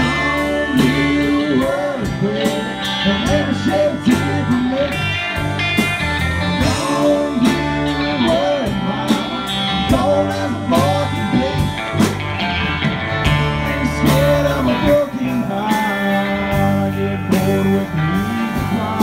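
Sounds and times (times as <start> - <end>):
country rock band playing: 0.0 - 19.0
guitar lead with bending notes: 0.0 - 19.0.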